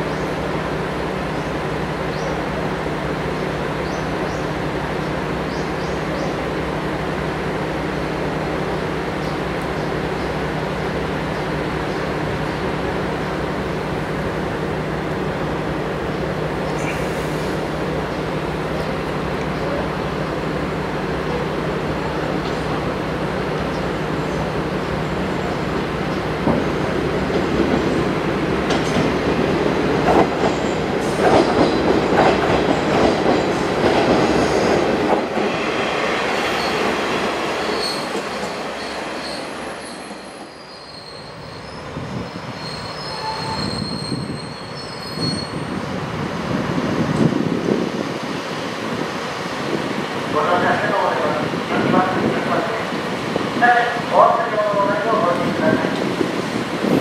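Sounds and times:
train wheels rumbling over track: 0.0 - 57.0
high-pitched wheel squeal: 37.6 - 41.9, 42.6 - 45.7.

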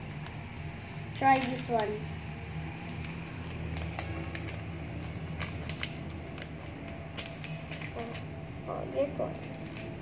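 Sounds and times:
plastic pack clicking and crinkling: 1.2 - 2.0, 2.8 - 10.0.

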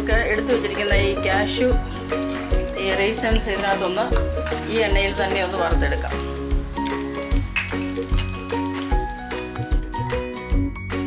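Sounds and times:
background music with steady beat: 0.0 - 11.0
nuts sizzling in hot oil: 1.9 - 10.0.

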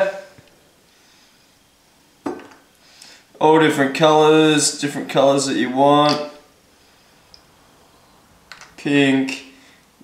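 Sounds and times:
plastic bottle set down on stone: 2.2 - 2.6.

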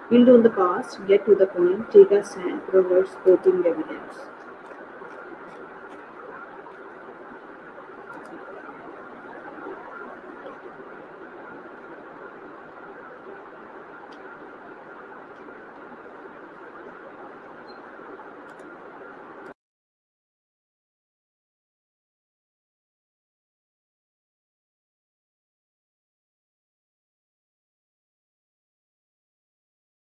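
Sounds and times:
open microphone background noise: 0.0 - 19.6
faint clicks: 18.4 - 18.8.

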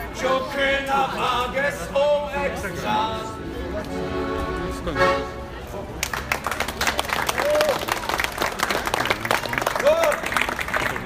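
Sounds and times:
accordion: 2.6 - 5.9
crowd clapping: 5.9 - 11.0.

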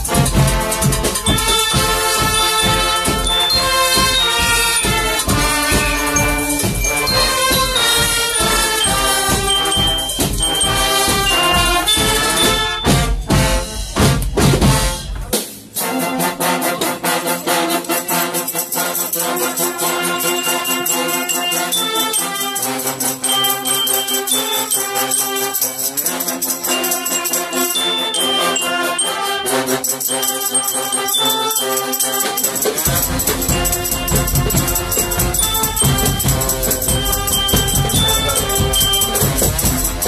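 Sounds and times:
bass drum beat: 0.0 - 15.4, 32.8 - 40.0
brass band playing: 0.0 - 40.0.

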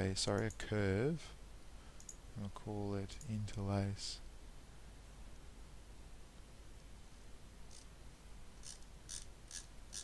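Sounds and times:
steady low hum: 0.0 - 10.0
computer mouse clicks: 2.0 - 2.2.

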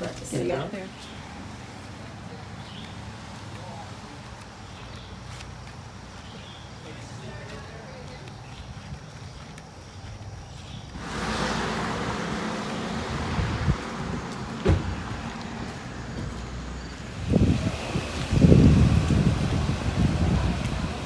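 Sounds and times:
steady rushing street noise: 0.0 - 21.0
wind buffeting microphone: 8.3 - 21.0.

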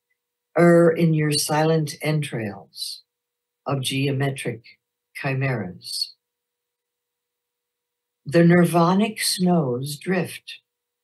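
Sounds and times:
woman reading: 0.6 - 3.1, 3.7 - 6.2, 8.3 - 10.6.

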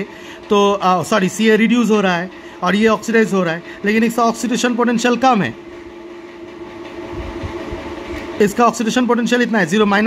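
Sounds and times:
mechanical drone: 0.0 - 10.0.

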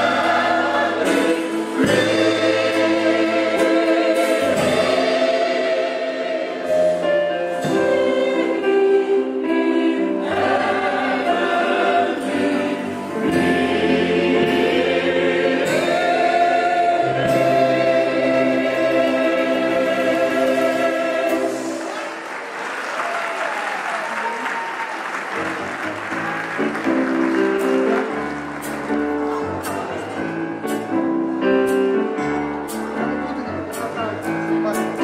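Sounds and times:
large choir singing: 0.0 - 22.4.

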